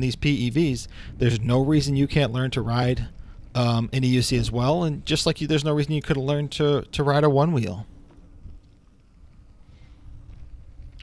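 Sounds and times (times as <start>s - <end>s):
tire rolling on concrete: 0.0s - 11.0s.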